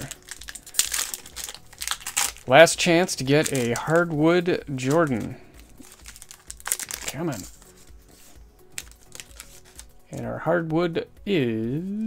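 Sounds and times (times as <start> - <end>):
wrapper crinkling: 0.0 - 4.1, 4.7 - 9.9.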